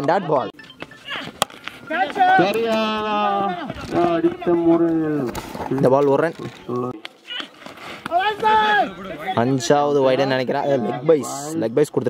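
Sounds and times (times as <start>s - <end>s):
bat striking tennis ball: 1.3s - 2.7s.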